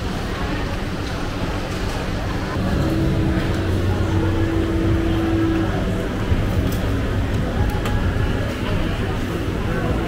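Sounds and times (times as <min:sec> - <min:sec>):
crowd chatter: 0:00.0 - 0:10.0
steady motor hum: 0:02.4 - 0:10.0
low rumble: 0:02.6 - 0:08.5.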